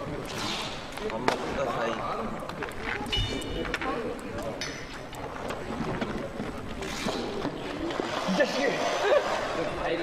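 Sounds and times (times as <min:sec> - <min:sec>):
faint voices chattering: 0:00.0 - 0:10.0.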